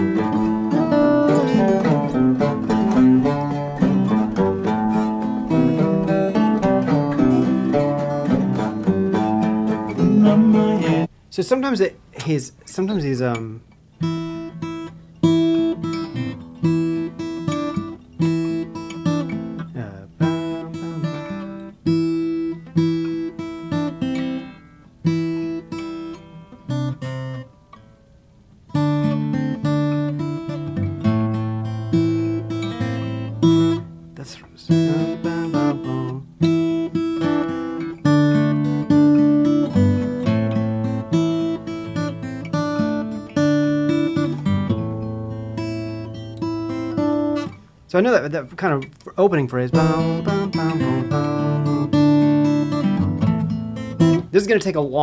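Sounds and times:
fingerpicked acoustic guitar: 0.0s - 11.2s, 11.8s - 55.0s.

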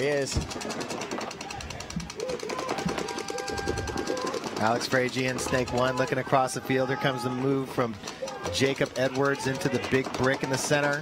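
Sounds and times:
paintball markers firing: 0.0s - 11.0s.

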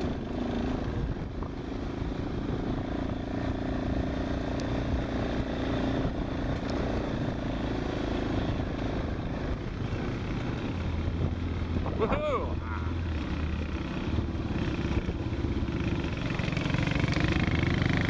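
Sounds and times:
quad bike engine running: 0.0s - 18.0s.

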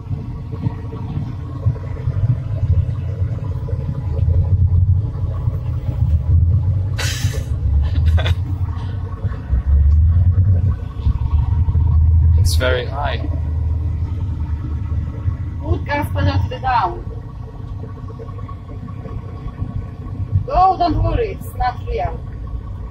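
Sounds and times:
driving simulator rumble: 0.0s - 22.9s.

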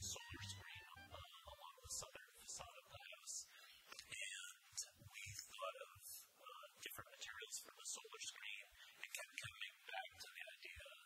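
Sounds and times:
faint whispery voice: 0.0s - 11.0s.

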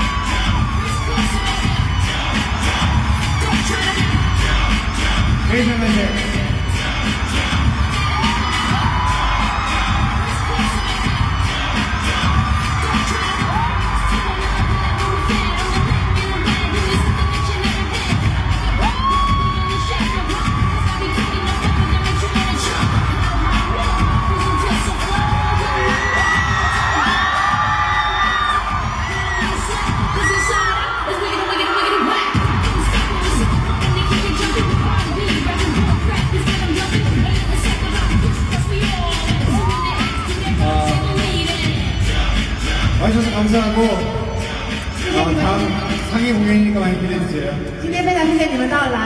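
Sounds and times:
backing music: 0.0s - 49.0s
crowd screaming and cheering: 0.0s - 49.0s.

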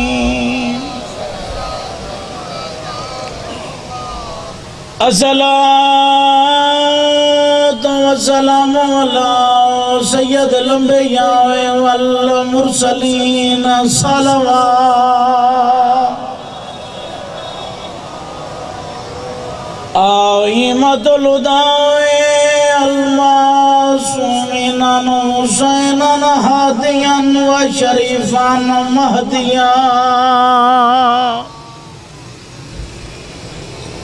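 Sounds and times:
low rumble: 0.0s - 2.2s
loud voice reciting: 0.0s - 16.5s, 20.0s - 31.6s
gathering background noise: 0.0s - 34.0s.

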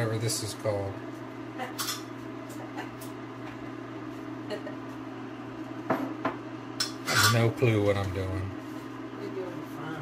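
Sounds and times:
kitchen appliance humming: 0.0s - 10.0s.

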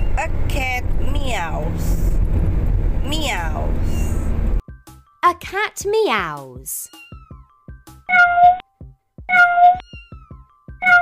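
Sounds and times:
light background music: 3.0s - 11.0s
cartoon cat meow: 9.3s - 11.0s.

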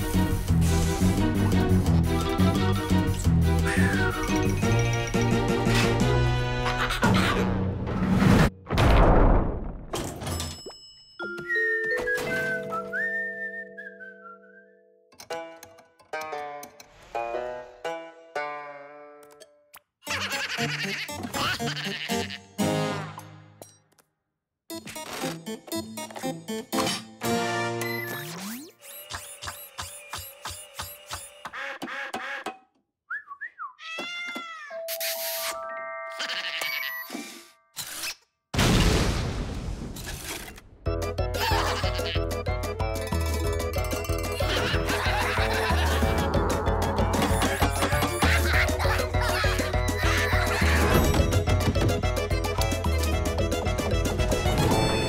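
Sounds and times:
cartoon music: 1.9s - 7.2s, 33.8s - 37.2s, 41.0s - 55.0s
cartoon cat vocalising: 33.8s - 34.8s, 36.1s - 37.1s.

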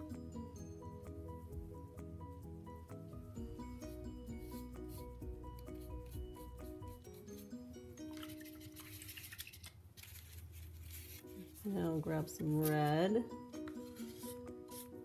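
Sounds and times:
soft background music: 0.0s - 15.0s
paintbrush rubbing on paper: 3.7s - 7.5s, 8.1s - 13.0s, 13.7s - 15.0s.

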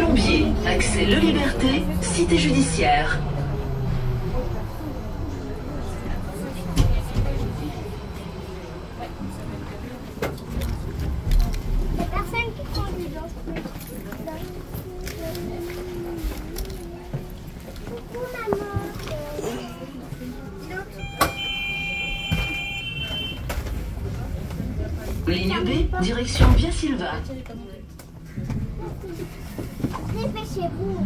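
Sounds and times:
passengers' voices: 0.0s - 31.0s
train humming: 0.0s - 31.0s.

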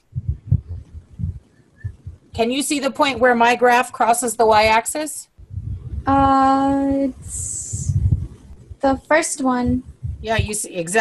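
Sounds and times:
soft low thuds: 0.0s - 3.5s, 4.5s - 11.0s.

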